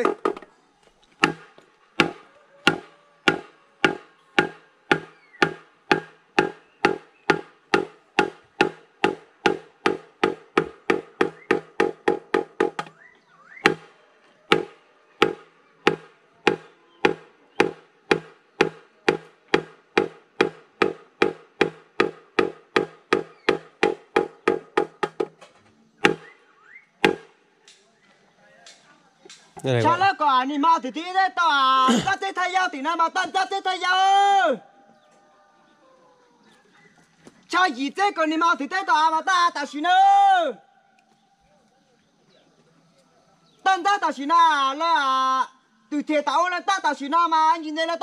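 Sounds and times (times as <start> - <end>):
hollow bamboo knocks: 0.0 - 0.5, 1.2 - 13.0, 13.6 - 13.9, 14.5 - 26.3, 27.0 - 27.3.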